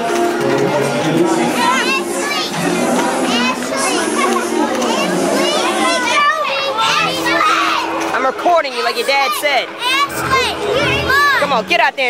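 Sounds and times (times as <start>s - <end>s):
children shouting and squealing: 1.4s - 11.6s.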